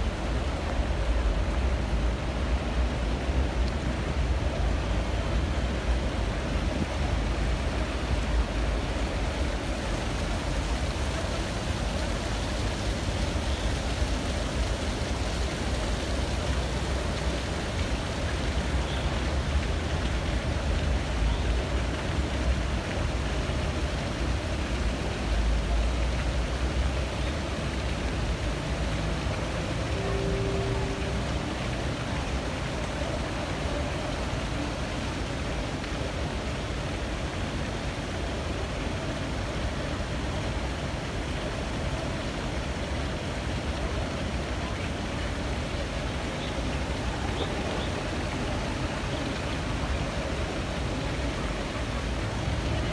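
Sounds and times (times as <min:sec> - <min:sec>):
city traffic rumble: 0:00.0 - 0:52.9
fountain water rushing: 0:00.0 - 0:52.9.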